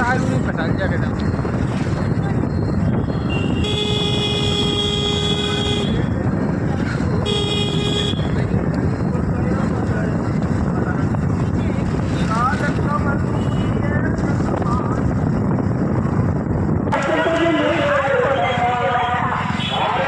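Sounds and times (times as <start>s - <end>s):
motorcycle engine rumble: 0.0s - 20.0s
wind on microphone: 0.0s - 20.0s
voices: 16.9s - 20.0s.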